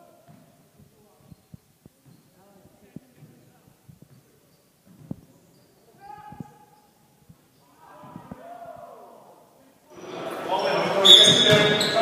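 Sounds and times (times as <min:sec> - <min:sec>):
basketball bouncing on wooden floor: 0:00.3 - 0:00.5
court noise: 0:09.9 - 0:12.0.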